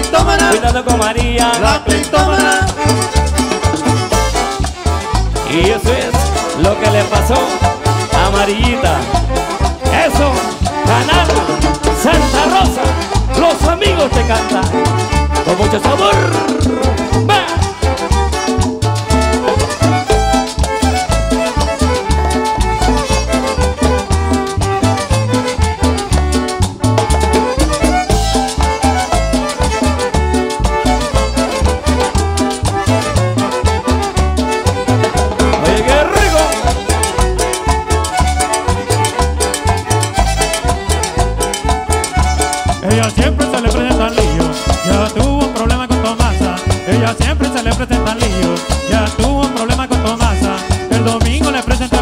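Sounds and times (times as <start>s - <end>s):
live latin dance band: 0.0s - 52.0s
pulsing bass beat: 0.0s - 52.0s.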